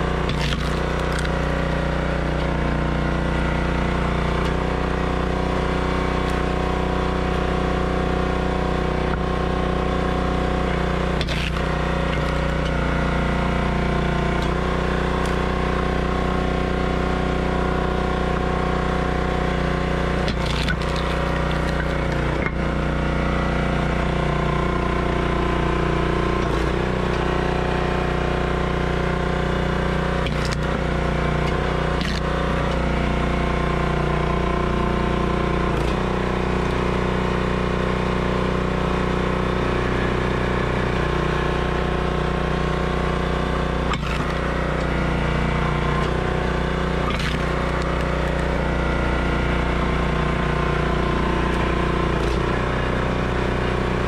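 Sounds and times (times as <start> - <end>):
firewood splitter engine running: 0.0 - 54.0
wood splitting cracks: 0.1 - 2.6, 6.2 - 6.6, 11.1 - 12.8, 14.4 - 15.6, 20.2 - 22.6, 30.2 - 32.9, 44.0 - 45.0, 47.0 - 48.6.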